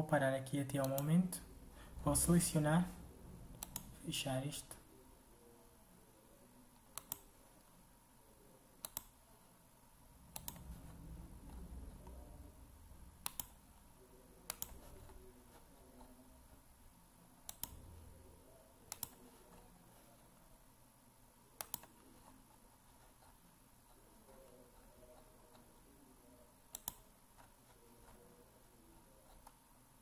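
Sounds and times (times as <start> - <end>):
computer mouse clicking: 0.8 - 1.1, 3.5 - 4.0, 6.8 - 7.4, 8.8 - 9.2, 10.3 - 12.2, 13.2 - 13.6, 14.5 - 15.2, 17.4 - 17.8, 18.9 - 19.2, 21.6 - 22.0, 26.7 - 28.2.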